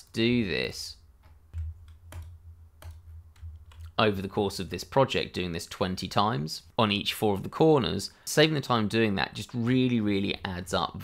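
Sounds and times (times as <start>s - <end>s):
low steady hum: 0.0s - 6.8s.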